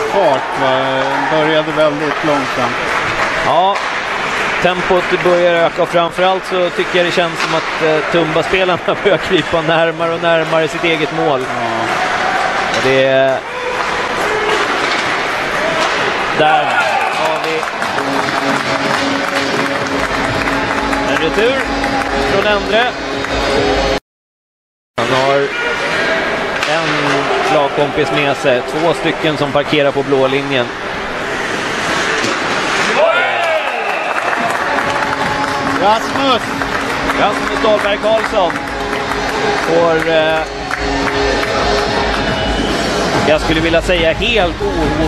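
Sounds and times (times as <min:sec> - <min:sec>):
crowd shouts: 0:00.0 - 0:03.6, 0:10.8 - 0:18.7, 0:25.2 - 0:28.8, 0:32.7 - 0:43.3
crowd cheering and applauding: 0:00.0 - 0:05.5, 0:16.4 - 0:24.0, 0:32.8 - 0:43.9
hockey sticks clattering: 0:01.6 - 0:08.6, 0:11.9 - 0:20.3, 0:26.6 - 0:27.6, 0:31.4 - 0:33.0
skates scraping ice: 0:13.8 - 0:21.6, 0:31.0 - 0:39.7.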